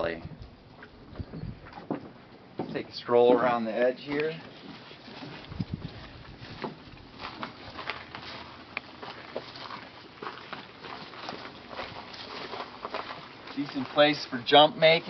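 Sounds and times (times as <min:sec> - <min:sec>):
footsteps on dry grass and dirt: 0:04.1 - 0:14.6.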